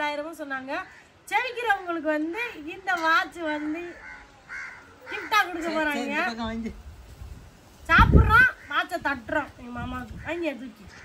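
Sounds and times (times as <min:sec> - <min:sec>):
woman talking: 0:00.0 - 0:04.0, 0:05.1 - 0:06.3, 0:07.9 - 0:11.0.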